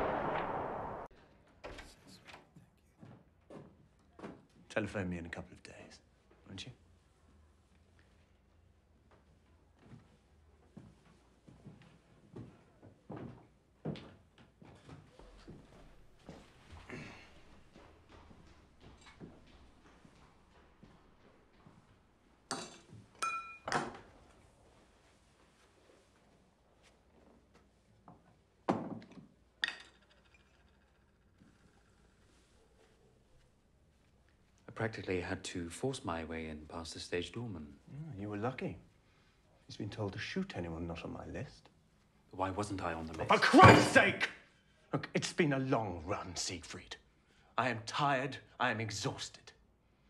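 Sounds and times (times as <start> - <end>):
glass and ceramic items clinking: 22.5 - 23.9.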